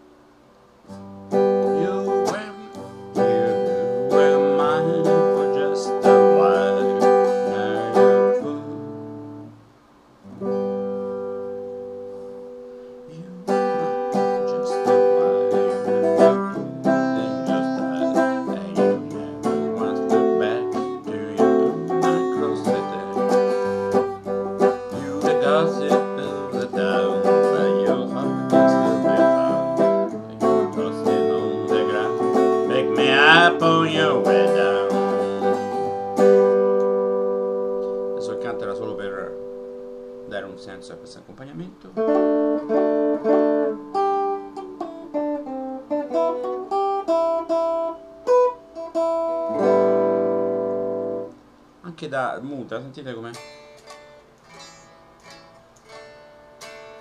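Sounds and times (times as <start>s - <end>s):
electric guitar chords: 0.0s - 51.9s, 52.5s - 57.0s.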